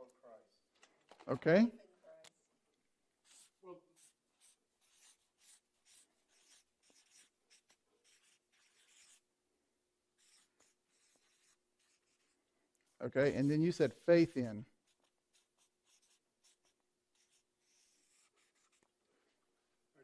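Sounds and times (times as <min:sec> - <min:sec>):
marker pen writing on paper: 0:03.2 - 0:09.3, 0:10.2 - 0:19.0.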